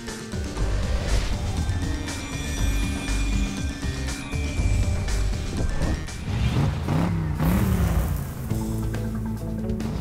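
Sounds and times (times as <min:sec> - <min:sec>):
music: 0:00.0 - 0:10.0
truck engine revving: 0:01.4 - 0:08.6.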